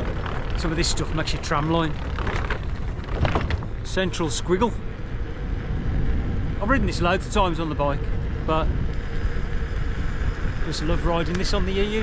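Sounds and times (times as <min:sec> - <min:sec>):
faint steady hum: 0:00.0 - 0:12.0
wind buffeting microphone: 0:00.0 - 0:12.0.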